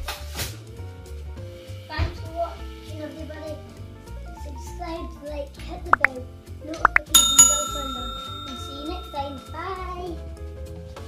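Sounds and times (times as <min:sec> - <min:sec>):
bell ding sound effect: 0:07.2 - 0:10.0.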